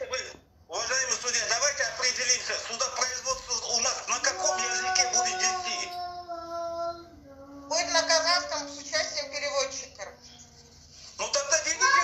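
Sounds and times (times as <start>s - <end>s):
person singing a long held note: 4.3s - 7.9s.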